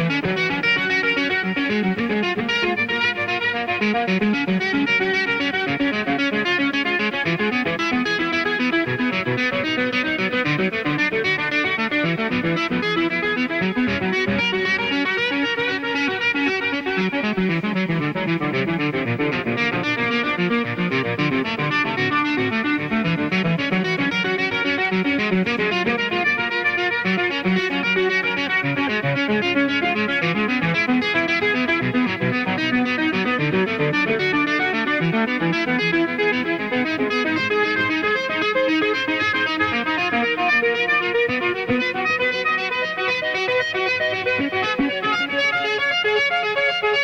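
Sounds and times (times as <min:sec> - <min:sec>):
electric guitar fast notes: 0:00.0 - 0:47.0.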